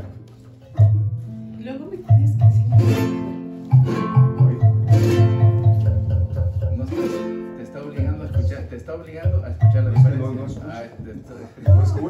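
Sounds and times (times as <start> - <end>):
strummed guitar chords: 0.0 - 10.4
plucked box bass notes: 0.0 - 10.8, 11.6 - 12.0.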